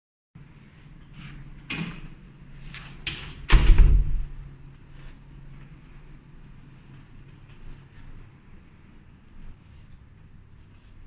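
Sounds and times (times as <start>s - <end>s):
faint room hum: 0.4s - 11.0s
heavy door thud: 3.1s - 4.5s.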